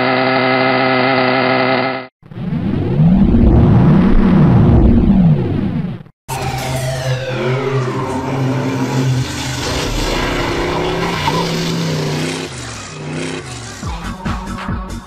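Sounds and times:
toy car motor revving: 0.0s - 2.1s
intro music: 6.3s - 10.8s.

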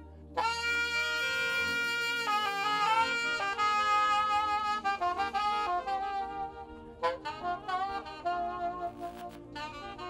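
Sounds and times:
solo saxophone melody: 0.0s - 10.0s.

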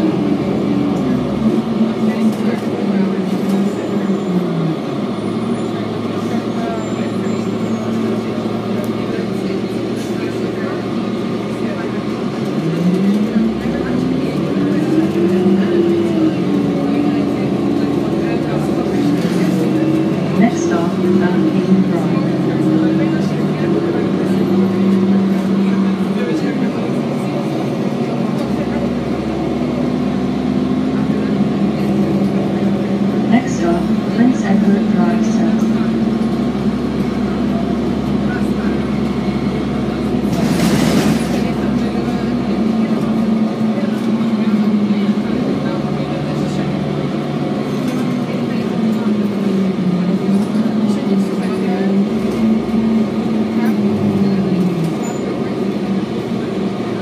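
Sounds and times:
bus diesel engine: 0.0s - 57.0s.

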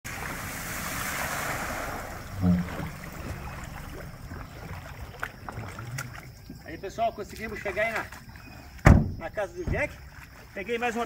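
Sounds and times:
tyres spraying through floodwater: 0.0s - 6.3s
loud low thump: 2.4s - 3.6s, 8.8s - 9.8s.

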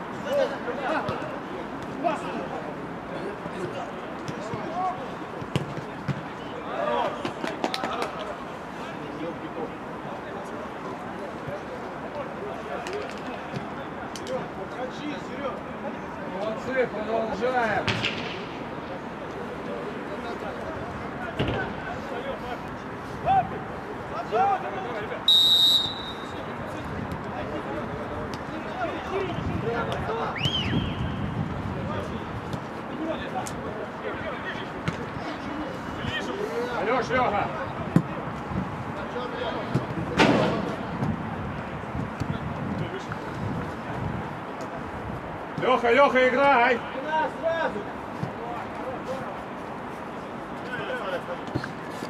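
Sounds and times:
referee's whistle blast: 25.3s - 26.4s.

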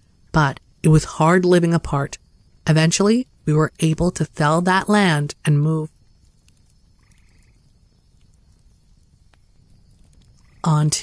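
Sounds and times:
faint ticks: 5.9s - 11.0s.

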